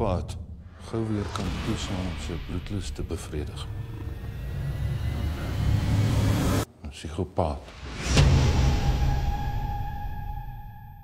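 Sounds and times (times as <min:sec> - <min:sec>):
low rumbling drone: 0:00.4 - 0:06.7.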